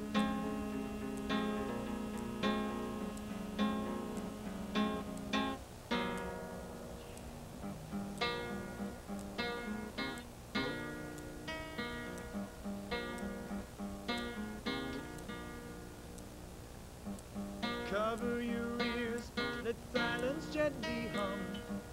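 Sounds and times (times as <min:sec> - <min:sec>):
acoustic guitar strummed: 0:00.0 - 0:06.9, 0:17.0 - 0:21.9.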